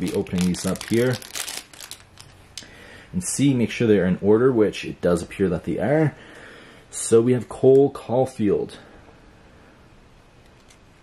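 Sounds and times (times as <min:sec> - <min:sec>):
plastic wrapping crinkling and tearing: 0:00.0 - 0:02.4.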